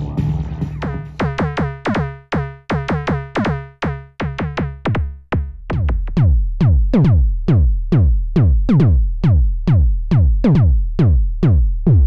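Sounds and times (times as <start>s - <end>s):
synthesized kick drum booming: 0.0s - 12.0s.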